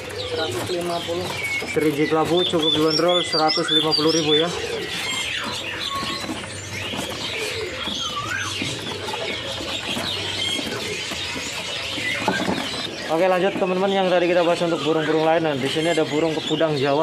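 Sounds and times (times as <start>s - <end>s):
songbirds chirping and whistling: 0.0s - 17.0s.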